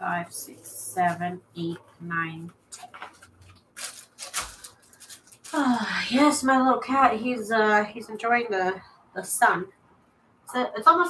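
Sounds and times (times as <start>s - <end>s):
paper rustling and tapping: 2.6s - 5.5s.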